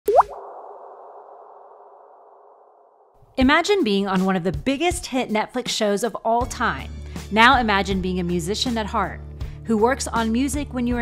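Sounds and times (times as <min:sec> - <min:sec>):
upward-sliding blip: 0:00.0 - 0:00.4.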